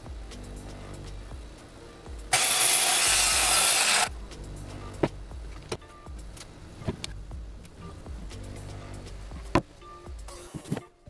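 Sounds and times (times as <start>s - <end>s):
background music: 0.0s - 11.0s
circular saw cutting wood: 2.3s - 4.1s.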